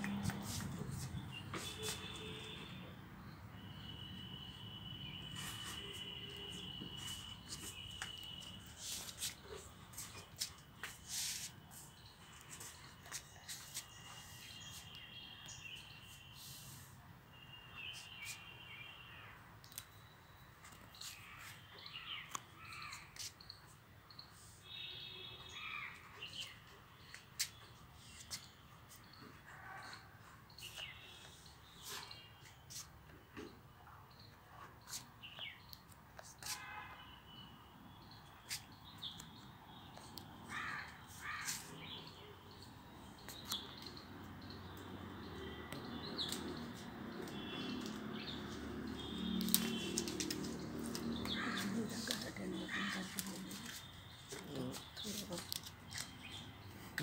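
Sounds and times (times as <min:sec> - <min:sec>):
crow cawing: 0:40.5 - 0:41.6, 0:51.3 - 0:51.7.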